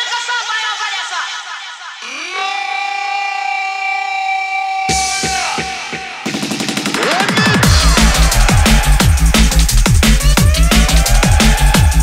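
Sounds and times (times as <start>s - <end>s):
deep bass hits: 7.6s - 12.0s.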